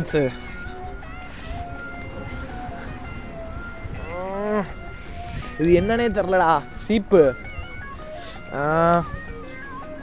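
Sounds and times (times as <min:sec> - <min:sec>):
drawn-out vocal calls: 0:00.4 - 0:05.6.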